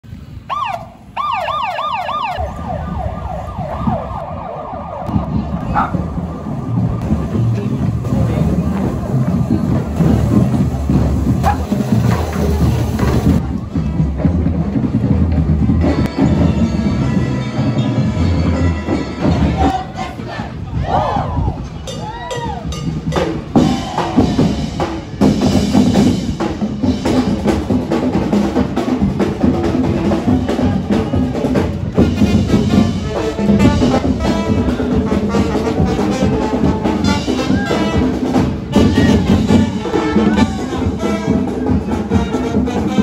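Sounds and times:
low street noise: 0.0 - 43.0
police motorcycle siren yelping: 0.5 - 7.0
crowd shouting: 19.4 - 22.8, 23.6 - 24.8, 29.7 - 32.0, 35.6 - 43.0.

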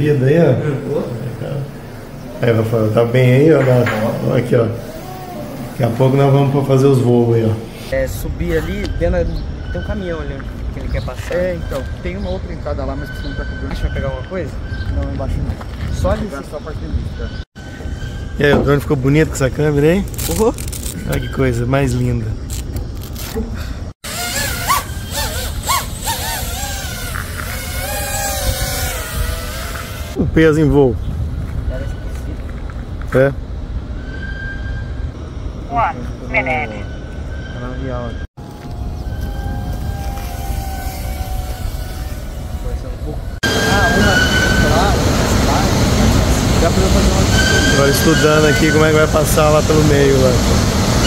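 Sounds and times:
drone motors whining: 0.0 - 10.4, 24.0 - 30.2, 36.0 - 51.0.

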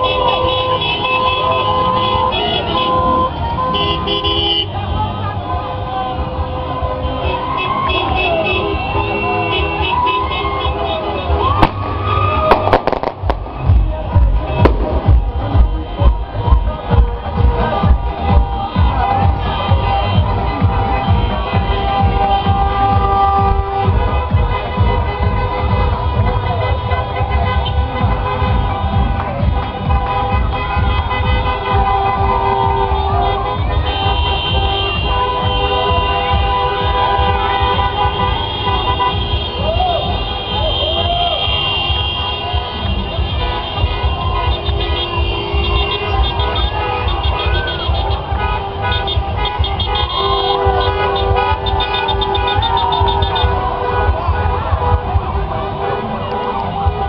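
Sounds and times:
voices: 0.0 - 23.3, 25.7 - 57.0
car horns honking: 0.0 - 57.0
cars passing slowly: 0.0 - 57.0
loud music: 6.2 - 57.0.

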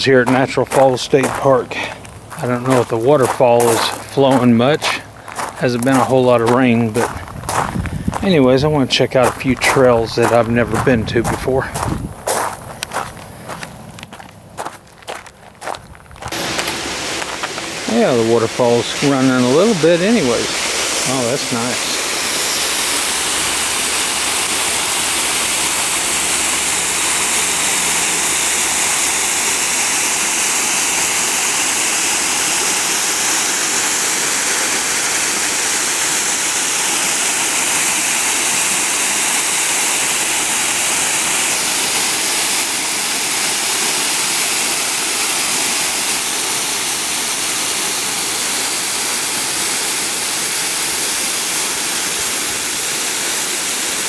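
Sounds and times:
water falling and splashing into pool: 0.2 - 7.6, 15.1 - 54.0.

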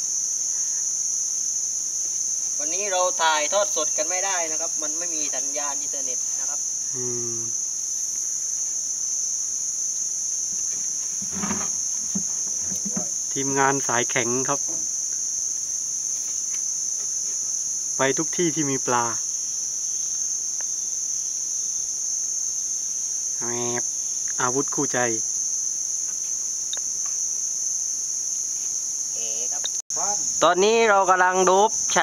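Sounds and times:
high-pitched insect chorus: 0.0 - 32.0.

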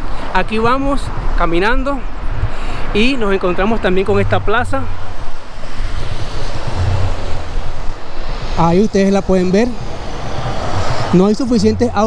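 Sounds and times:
tyres and engines rushing: 0.0 - 12.0.

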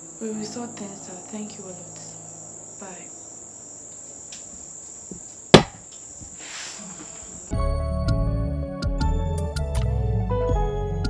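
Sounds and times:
crickets trilling: 0.0 - 7.6
sharp loud smack: 5.6 - 5.8
short hiss: 6.4 - 7.3.

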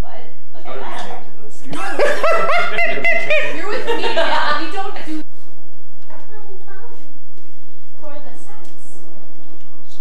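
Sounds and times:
woman laughing: 1.8 - 5.2.

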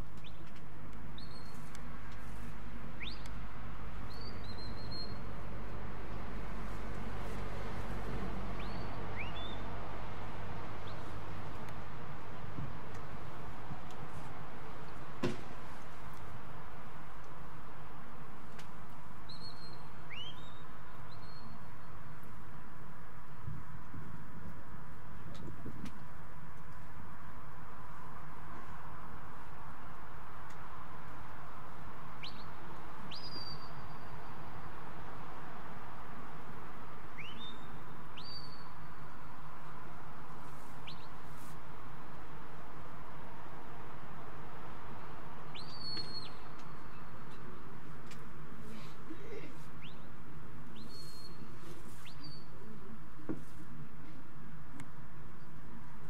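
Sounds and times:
background hiss and rumble: 0.0 - 56.0
steady background noise: 0.0 - 56.0.

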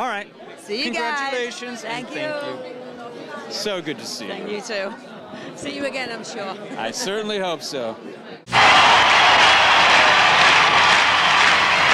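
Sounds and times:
person talking: 1.9 - 2.8.

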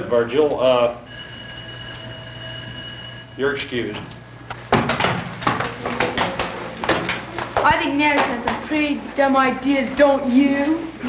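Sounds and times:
school bell ringing: 1.0 - 4.1.

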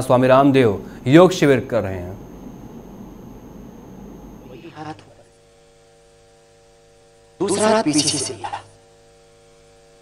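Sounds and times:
low background hiss: 0.0 - 5.2
electrical mains hum: 0.0 - 10.0.

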